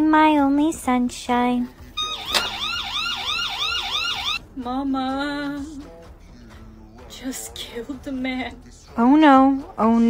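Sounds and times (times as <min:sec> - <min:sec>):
police siren yelp: 0:02.0 - 0:04.4.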